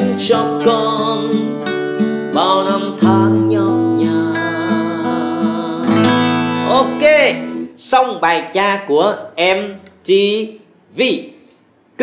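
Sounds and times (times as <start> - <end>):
man singing: 0.0 - 7.7
acoustic guitar picking chords: 0.0 - 7.8.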